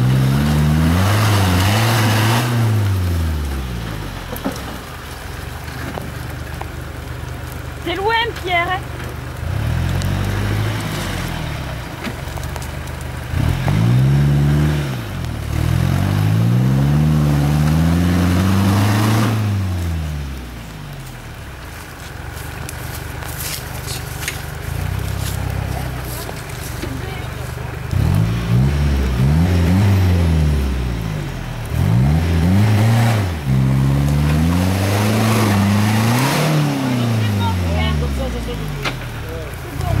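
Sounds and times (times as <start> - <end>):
pickup engine revving: 0.0 - 40.0.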